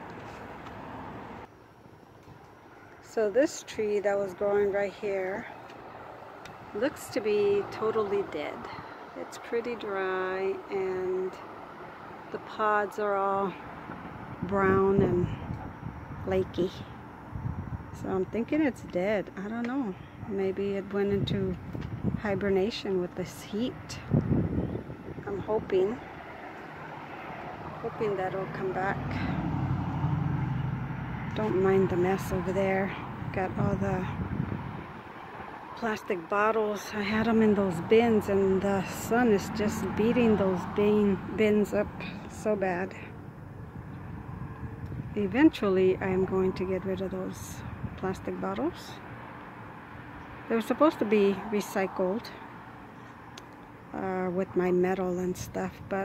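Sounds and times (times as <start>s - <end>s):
low outdoor rumble: 0.0s - 56.0s.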